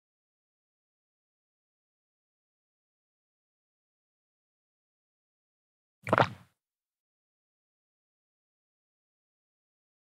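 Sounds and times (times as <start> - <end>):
short pop sound effect: 6.0 - 6.4.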